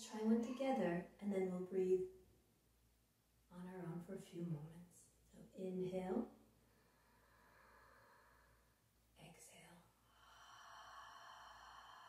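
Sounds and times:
slow exhale through the mouth: 10.1s - 12.0s.

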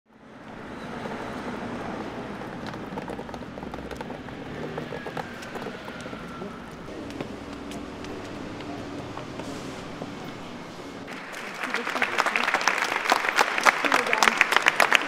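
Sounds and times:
traffic hum: 0.1s - 15.0s.

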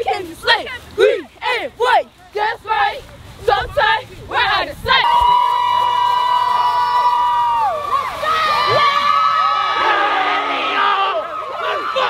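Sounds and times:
girls cheering and yelling: 4.8s - 12.0s
voices shouting over one another: 7.8s - 12.0s.

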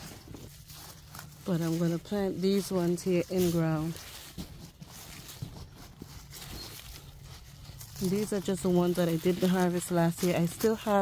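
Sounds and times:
hand digging through soil and leaves: 0.0s - 11.0s
small crunches and knocks: 0.0s - 11.0s.

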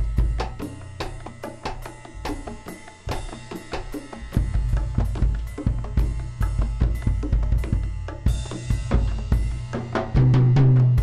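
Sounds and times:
drum kit groove: 0.0s - 11.0s
hand drums: 0.0s - 11.0s.

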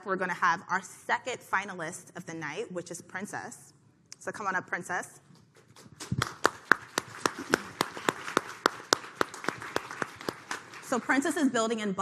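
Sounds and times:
audience applauding: 6.0s - 11.2s.

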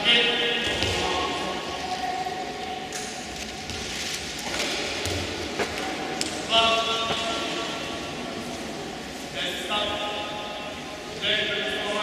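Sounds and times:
sports hall background noise: 0.0s - 12.0s.

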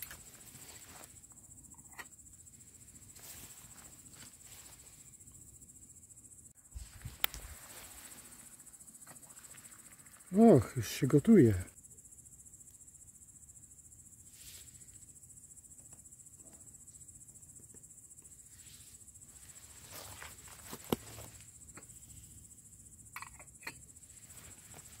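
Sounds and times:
crickets trilling: 0.0s - 25.0s.

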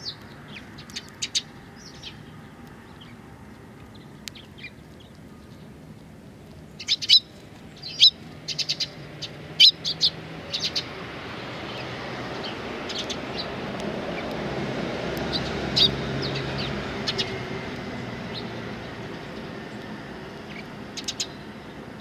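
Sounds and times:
sparrows chirping: 0.0s - 22.0s.

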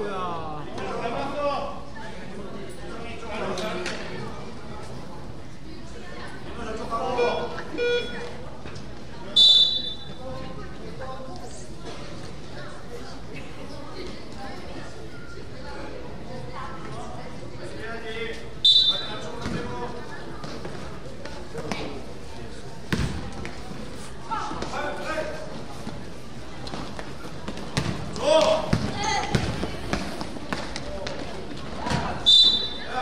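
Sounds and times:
referee's whistle blast: 9.4s - 10.1s, 18.6s - 19.2s, 32.2s - 32.9s
basketball bouncing on court: 27.5s - 31.2s.

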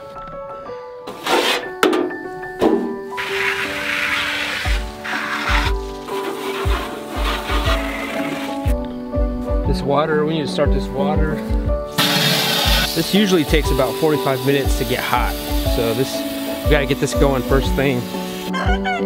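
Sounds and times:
background music with steady beat: 0.0s - 19.0s.

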